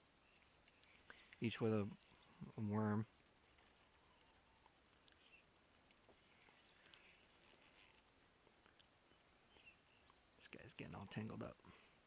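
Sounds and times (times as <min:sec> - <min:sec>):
faint high chirps: 0:03.4 - 0:08.0, 0:08.7 - 0:12.0.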